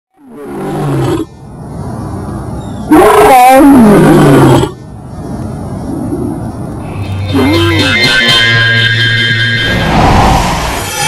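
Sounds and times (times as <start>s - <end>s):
lion roaring: 0.2s - 1.3s, 2.9s - 4.8s.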